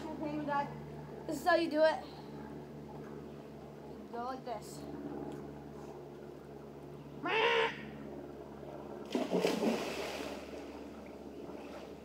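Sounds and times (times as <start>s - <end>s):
splash into water: 9.1s - 10.6s.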